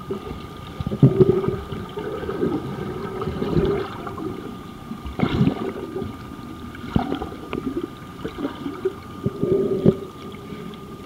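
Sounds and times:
faint steady tone: 0.0s - 11.0s
muffled underwater sloshing: 0.0s - 11.0s.

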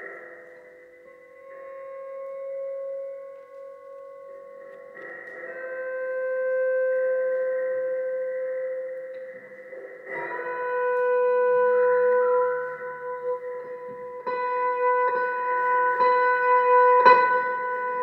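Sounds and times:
pedal steel guitar sustained notes: 0.0s - 18.0s.

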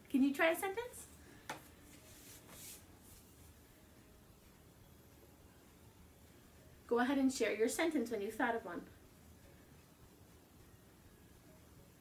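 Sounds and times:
woman's voice: 0.1s - 1.1s, 6.9s - 8.9s.

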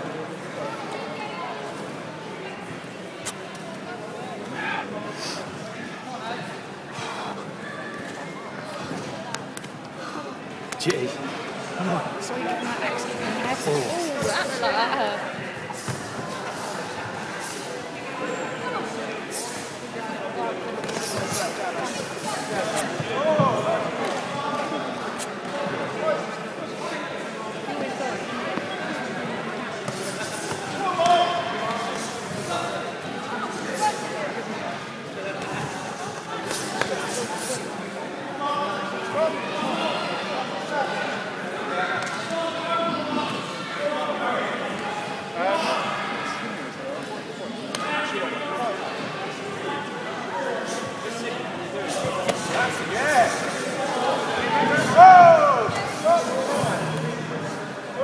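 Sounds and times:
spectators shouting: 54.4s - 55.9s.

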